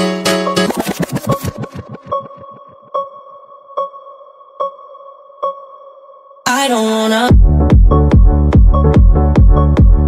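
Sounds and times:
sustained electronic tone: 0:00.6 - 0:03.5.

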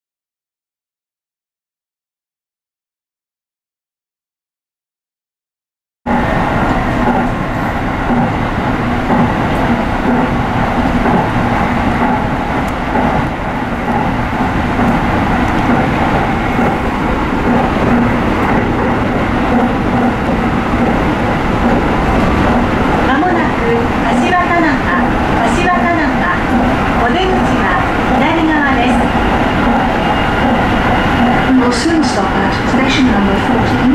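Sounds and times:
train wheels rumbling on rail: 0:06.1 - 0:33.9
onboard announcement: 0:14.8 - 0:33.9.

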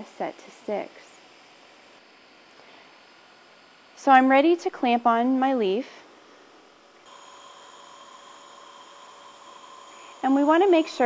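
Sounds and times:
faint electrical whine: 0:00.0 - 0:11.0
low hiss: 0:06.2 - 0:11.0.

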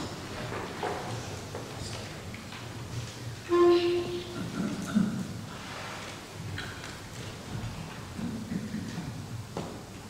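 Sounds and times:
faint low murmur: 0:00.0 - 0:10.0.

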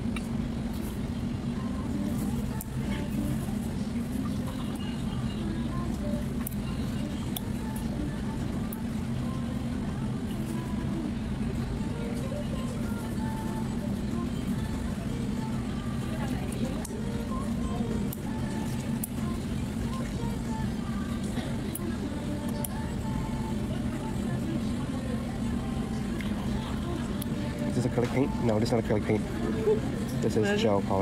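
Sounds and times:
low mechanical hum: 0:00.0 - 0:31.0
faint indistinct voices: 0:00.1 - 0:31.0.

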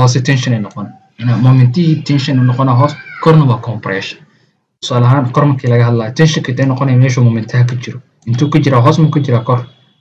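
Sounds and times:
man speaking: 0:00.0 - 0:09.8.

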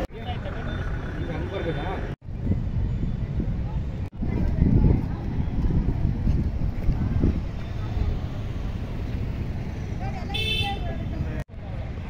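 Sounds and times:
street traffic rumbling: 0:00.0 - 0:12.0.

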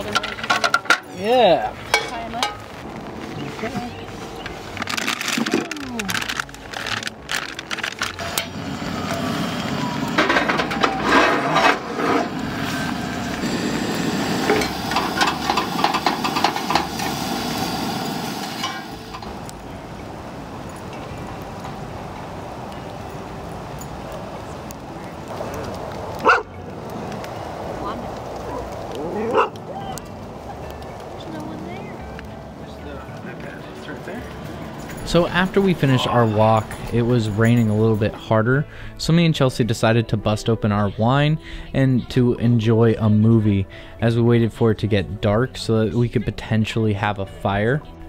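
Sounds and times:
utensil scraping a pan: 0:10.2 - 0:13.3
dog yelping: 0:26.2 - 0:26.5, 0:28.4 - 0:30.1.

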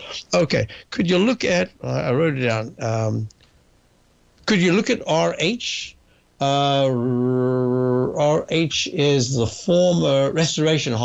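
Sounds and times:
man speaking: 0:00.0 - 0:03.3, 0:04.4 - 0:11.0
man's hesitant uhh: 0:06.4 - 0:08.4.

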